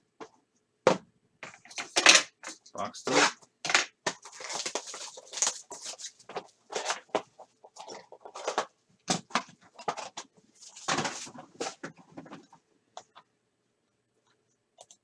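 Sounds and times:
plastic wrapper crinkling: 4.2 - 8.7.

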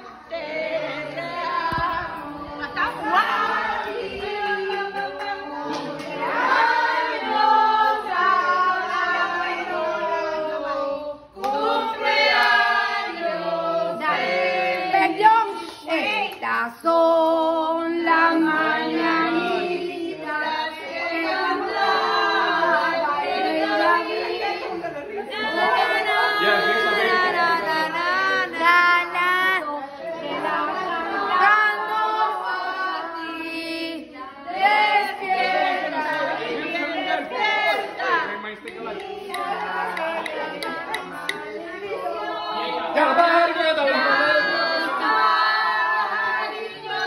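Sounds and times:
group singing: 0.0 - 47.0.

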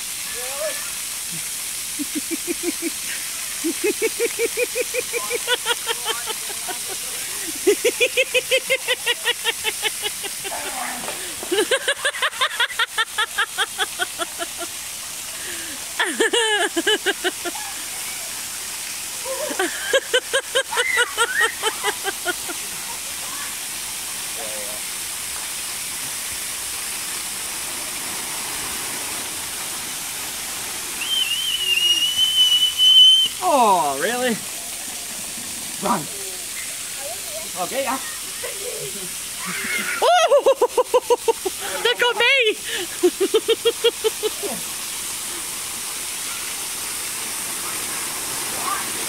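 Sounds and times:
water jets spraying hiss: 0.0 - 49.0
people laughing: 2.0 - 14.8, 15.4 - 18.0, 19.2 - 22.9, 38.3 - 44.6.

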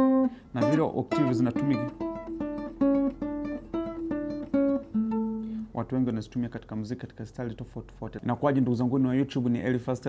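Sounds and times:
acoustic guitar picked melody: 0.0 - 5.9.

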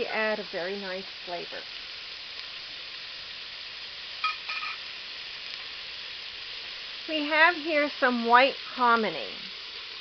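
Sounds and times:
food frying in oil: 0.0 - 10.0
short high-pitched sound: 4.2 - 4.8.

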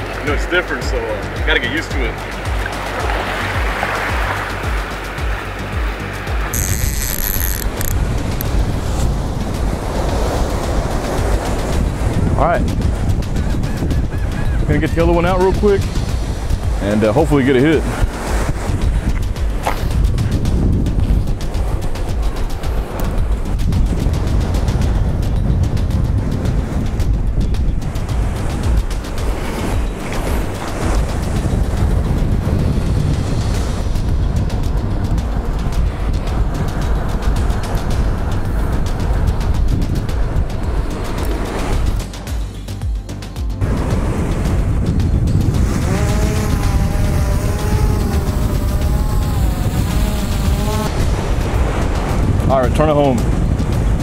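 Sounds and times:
background music: 0.0 - 54.0
wind buffeting microphone: 1.9 - 42.1, 43.6 - 54.0
drone motors whining: 6.5 - 8.0.

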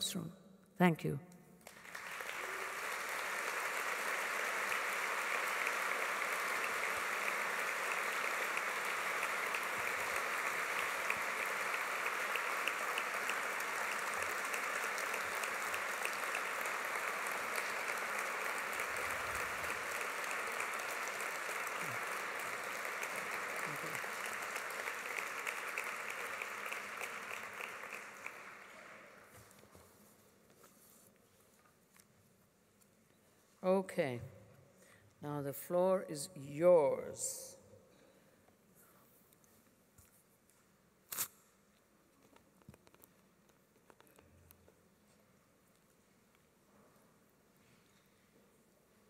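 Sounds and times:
audience applauding: 1.6 - 29.3.

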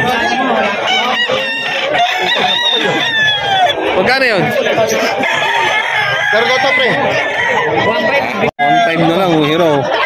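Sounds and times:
crowd voices: 0.0 - 10.0
roosters crowing: 0.0 - 10.0.

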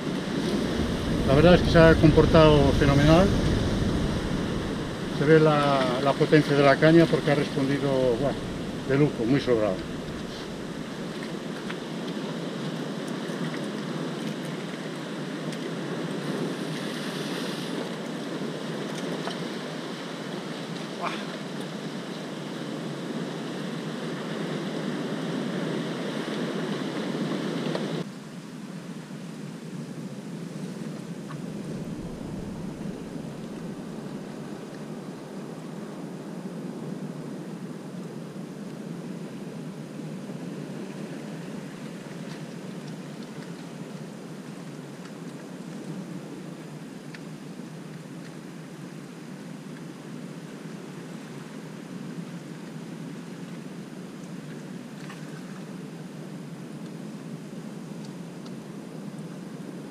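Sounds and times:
wind on microphone: 0.0 - 12.4, 30.8 - 35.3
surf washing over rocks: 0.0 - 28.2, 30.3 - 58.7.

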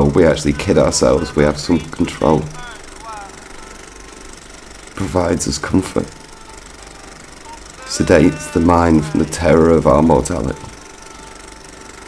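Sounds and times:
film projector rattling: 0.0 - 12.0.

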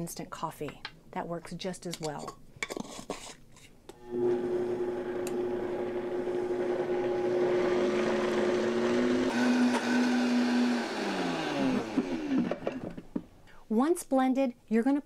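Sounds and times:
blender running: 4.0 - 13.0.

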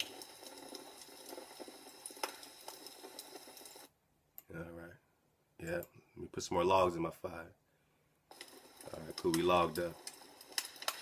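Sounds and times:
wood fire crackling: 0.0 - 3.9, 8.3 - 11.0.

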